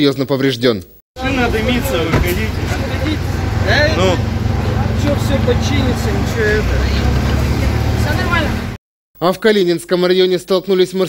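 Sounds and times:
low rumble of vehicles: 0:01.2 - 0:08.8
people talking indistinctly: 0:01.2 - 0:11.0.

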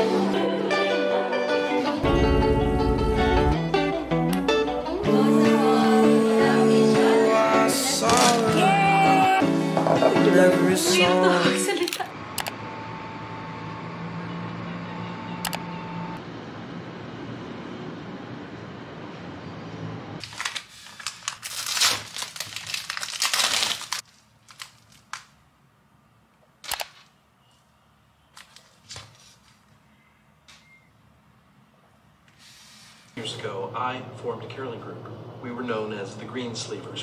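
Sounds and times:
plastic film crinkling and tearing: 0:08.0 - 0:08.8, 0:20.2 - 0:25.4.

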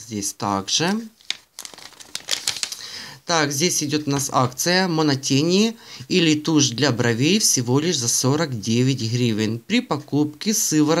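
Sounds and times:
glossy paper page turning: 0:00.9 - 0:02.8.

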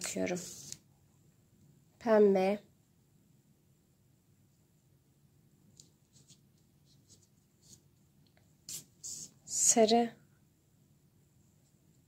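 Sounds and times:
scratchy rustles of yarn: 0:00.0 - 0:00.8, 0:05.8 - 0:08.0.

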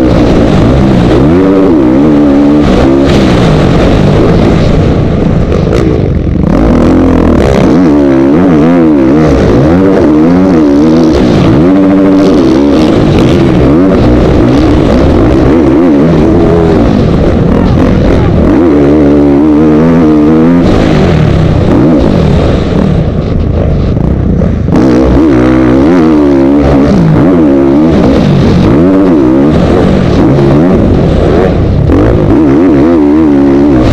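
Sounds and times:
dirt bike engine revving: 0:00.0 - 0:33.9.

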